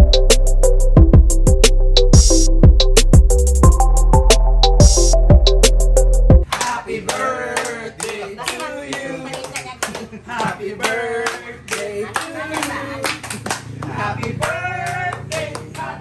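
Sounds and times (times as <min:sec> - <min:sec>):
people clapping: 0:06.4 - 0:16.0
voices singing along: 0:06.4 - 0:16.0.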